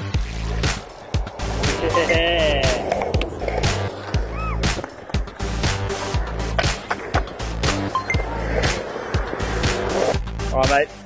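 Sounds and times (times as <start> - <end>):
background music with steady beat: 0.0 - 11.0
skateboard wheels rolling on concrete: 0.0 - 11.0.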